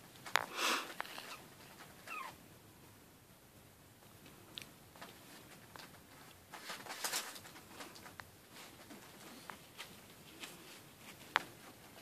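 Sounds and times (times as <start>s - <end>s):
puppy whimpering: 2.0s - 2.4s.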